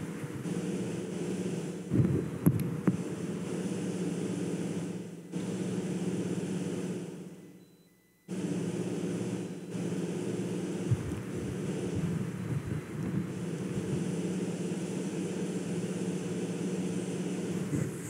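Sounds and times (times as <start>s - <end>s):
low room hum and rumble: 0.0s - 18.0s.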